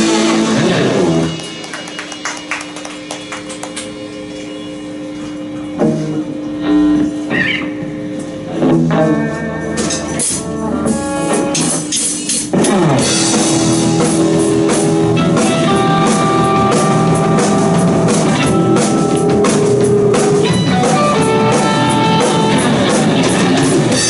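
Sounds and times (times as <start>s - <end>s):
live rock band: 0.0s - 5.1s, 5.7s - 24.0s.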